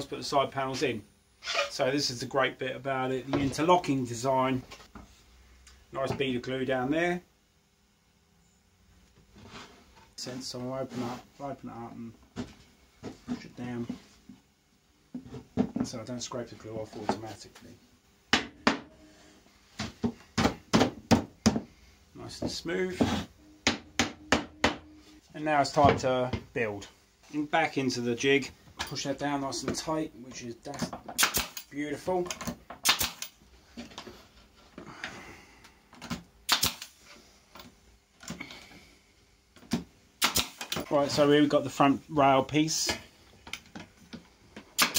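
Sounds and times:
pneumatic nailer firing into wood: 31.2 - 31.7, 32.8 - 33.4, 36.5 - 37.0, 40.2 - 40.8.

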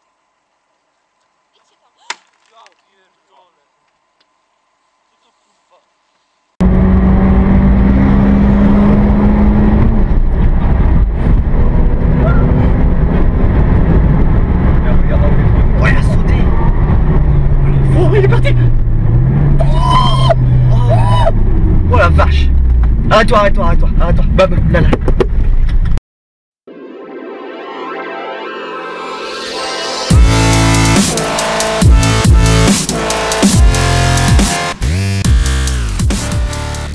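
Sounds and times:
car engine at high revs: 6.6 - 23.2, 30.1 - 36.9
voices exclaiming: 19.6 - 21.4.

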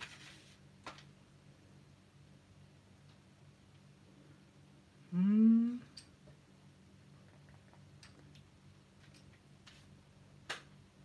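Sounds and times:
man humming hmm: 5.0 - 6.0.

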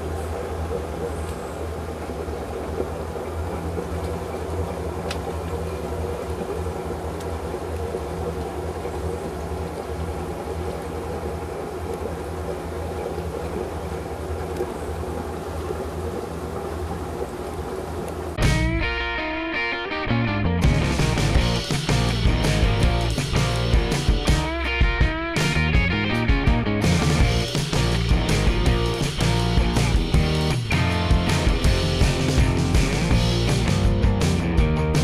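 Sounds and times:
boat engine idling: 0.0 - 35.0.

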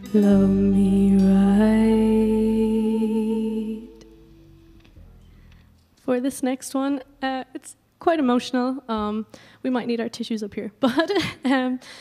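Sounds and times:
live band holding chord: 0.0 - 4.9
sung note wavering: 0.0 - 5.0.

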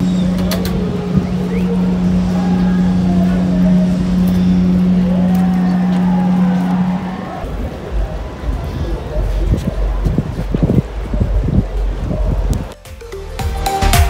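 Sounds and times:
ship's horn low blast: 0.0 - 7.5.

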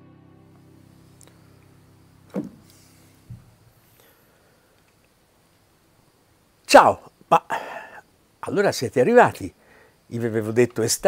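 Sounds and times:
microphone stand handled: 2.3 - 3.5
soft low thump: 2.3 - 3.6.

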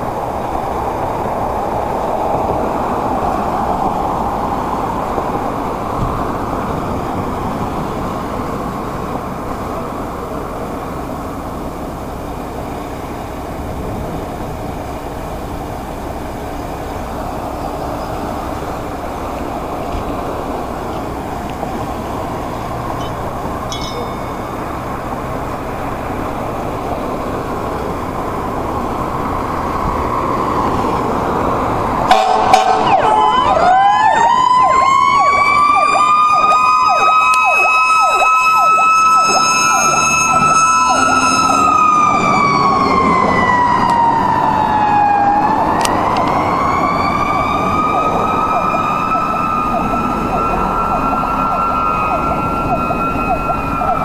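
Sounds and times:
fire engine rumbling: 0.0 - 54.0
siren wailing: 18.7 - 27.6, 29.2 - 54.0
horn blasts: 32.1 - 33.0, 39.1 - 41.8.

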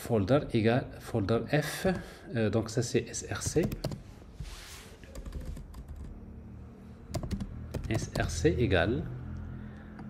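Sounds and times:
computer keyboard keystrokes: 3.4 - 4.0, 5.1 - 6.2, 7.1 - 8.3.

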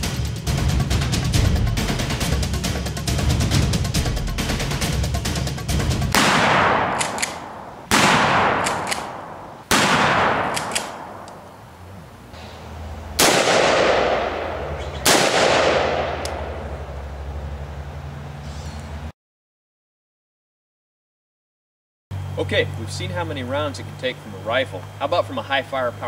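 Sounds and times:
loud gunshots with echo: 6.1 - 11.5, 13.2 - 16.8
low steady hum: 6.1 - 19.1, 22.1 - 26.0.

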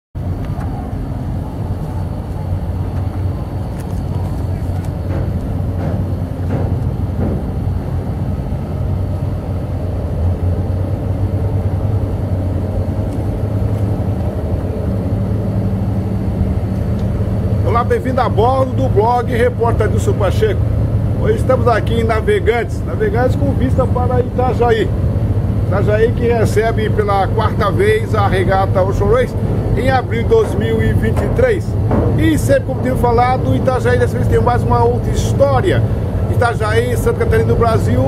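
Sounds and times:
low engine rumble: 0.2 - 38.0.

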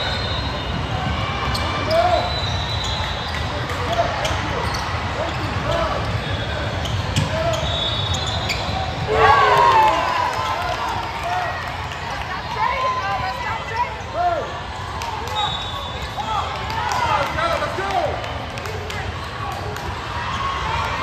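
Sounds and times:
sneaker squeaks: 0.0 - 9.1, 15.2 - 16.3
players and spectators calling out: 0.0 - 21.0.

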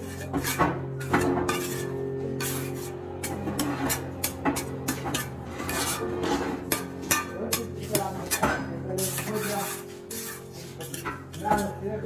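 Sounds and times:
trowel scraping over mortar on stone: 0.0 - 12.0.

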